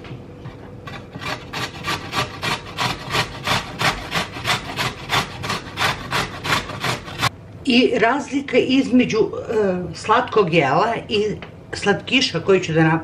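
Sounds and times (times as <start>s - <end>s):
pumpkin grated on box grater: 0.8s - 7.3s.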